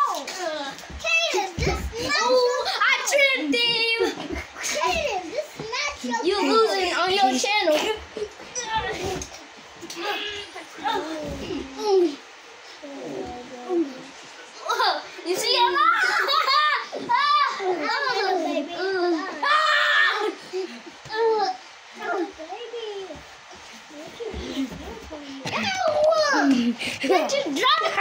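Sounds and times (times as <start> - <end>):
child squealing and whining: 10.0 - 12.2, 19.1 - 20.4.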